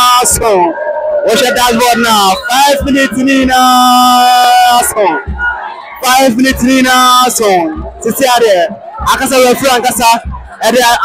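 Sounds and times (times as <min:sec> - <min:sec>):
man chanting loudly: 0:00.0 - 0:05.3, 0:06.0 - 0:11.0
crowd voices: 0:00.0 - 0:11.0.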